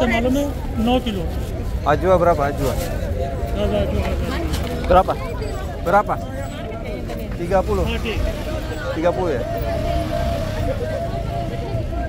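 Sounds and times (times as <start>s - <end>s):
low traffic rumble: 0.0s - 12.0s
people's voices: 0.0s - 12.0s.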